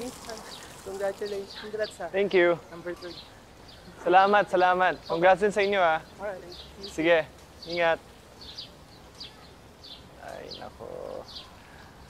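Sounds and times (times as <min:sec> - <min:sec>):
small birds chirping: 0:00.0 - 0:12.0.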